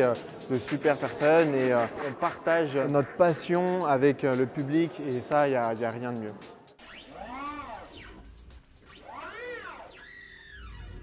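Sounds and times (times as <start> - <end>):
swooping synthesizer tones: 0.0 - 5.6, 6.7 - 11.0.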